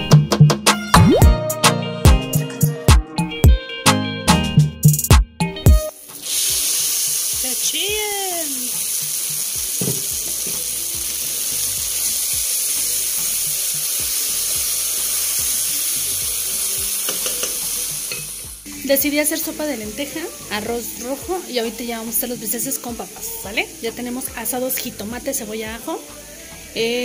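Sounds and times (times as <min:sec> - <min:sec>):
rice sizzling in a hot pot: 0:05.9 - 0:27.0.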